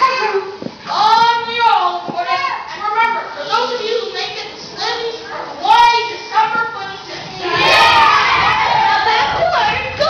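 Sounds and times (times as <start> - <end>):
children speaking: 0.0 - 10.0
children shouting together: 7.4 - 10.0.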